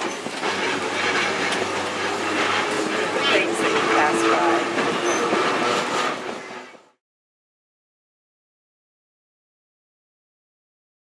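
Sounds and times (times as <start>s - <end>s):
rail joint clicks and knocks: 0.0s - 6.7s
trolley wheels on rail: 0.0s - 7.0s.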